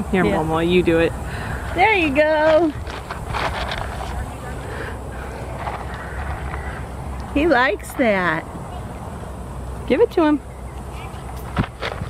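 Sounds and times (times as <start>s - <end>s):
faint rustling and scraping: 1.6s - 6.9s.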